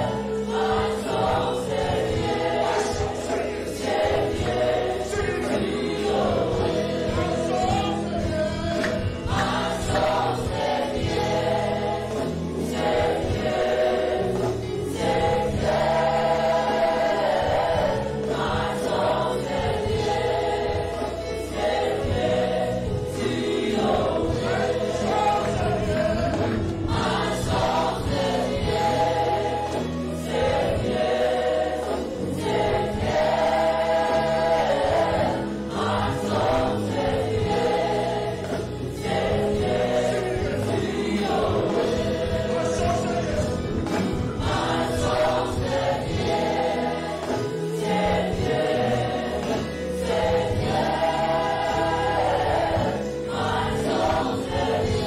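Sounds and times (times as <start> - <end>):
bass guitar: 0.0 - 55.0
singers and congregation singing: 0.0 - 55.0.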